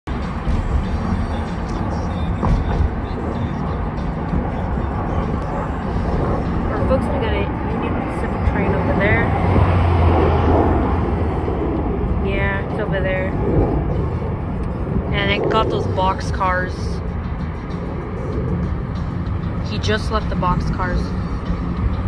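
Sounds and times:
car cabin road noise: 0.1s - 22.0s
faint voices: 0.6s - 9.4s.

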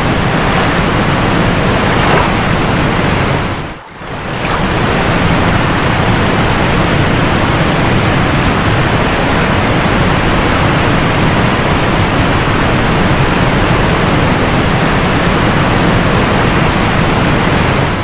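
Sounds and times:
waterfall rushing: 0.0s - 9.5s.

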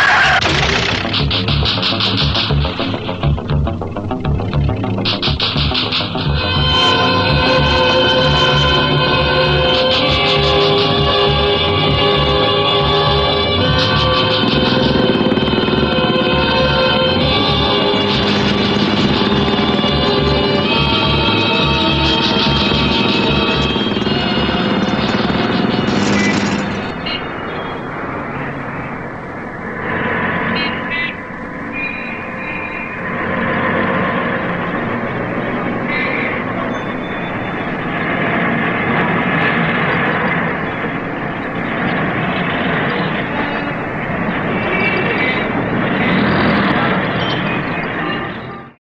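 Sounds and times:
indistinct voices: 0.0s - 37.9s
vehicle engines and traffic: 0.0s - 48.8s
film music with steady beat: 0.3s - 27.3s.

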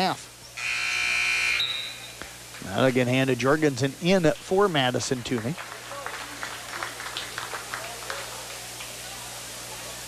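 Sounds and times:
steady low hum: 0.0s - 10.0s
crowd chatter: 4.6s - 10.0s.

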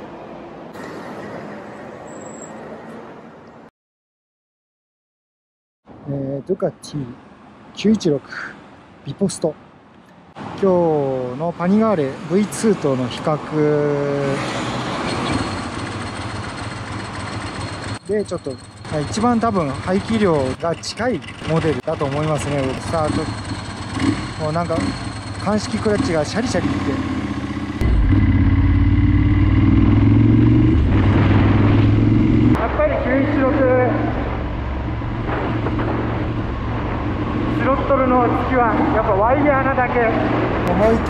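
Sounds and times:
motorcycle engine running: 21.2s - 32.5s.

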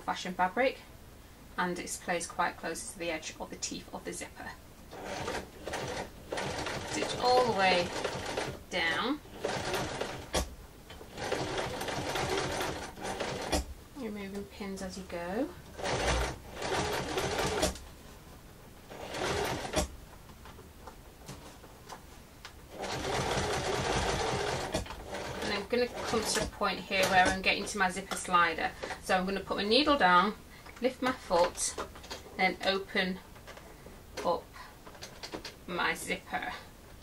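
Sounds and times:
electric sewing machine running: 4.9s - 8.6s, 9.2s - 10.4s, 11.1s - 13.6s, 18.9s - 19.9s, 22.7s - 27.5s.

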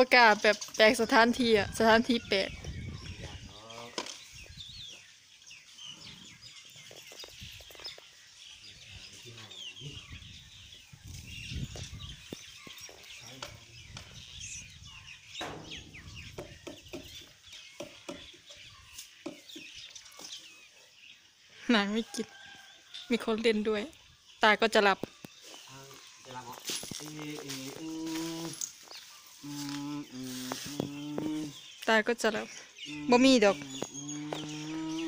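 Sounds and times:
small birds chirping: 0.0s - 35.0s.

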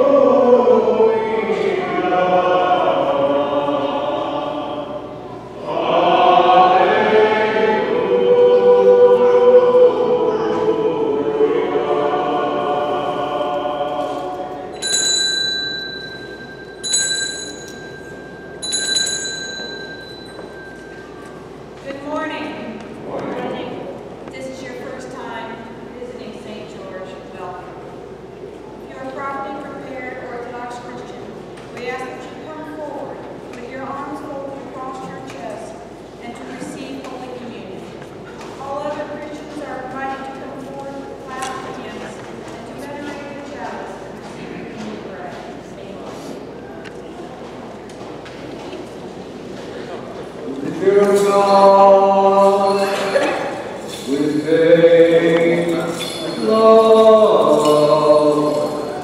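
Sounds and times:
small metal bells jingling: 14.7s - 21.2s, 52.4s - 59.0s
woman reading aloud: 21.8s - 27.8s, 28.9s - 38.0s, 38.6s - 44.2s, 44.9s - 46.3s.

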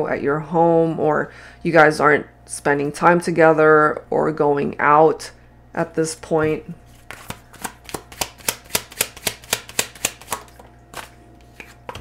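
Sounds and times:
cards being shuffled: 6.9s - 12.0s.

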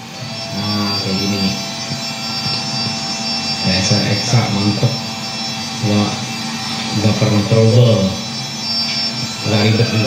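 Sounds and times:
printer whirring: 0.0s - 10.0s
man's voice: 9.4s - 10.0s.

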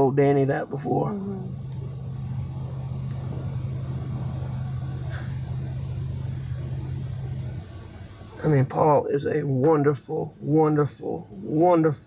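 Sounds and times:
vehicle hum inside cabin: 0.0s - 12.0s.

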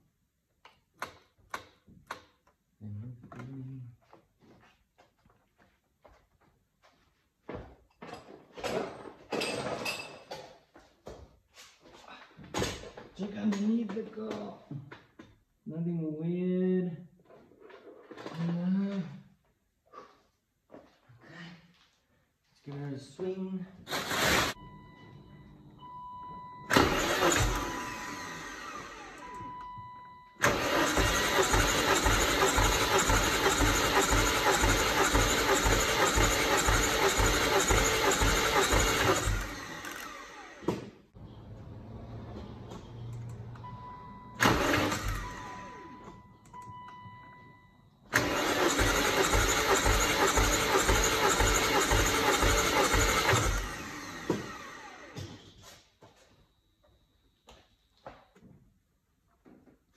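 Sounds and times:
engine cranking without firing: 26.7s - 29.3s, 30.4s - 40.6s, 41.3s - 45.7s, 48.1s - 55.1s.

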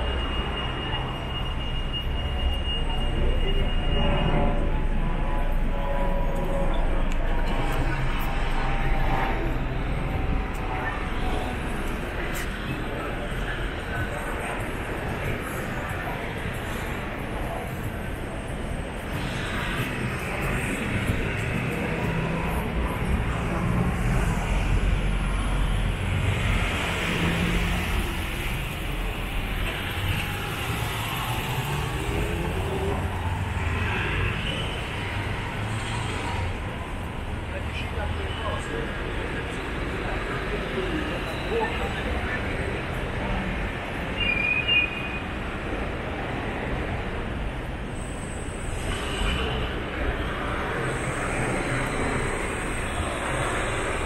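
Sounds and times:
city street traffic: 0.0s - 54.0s.

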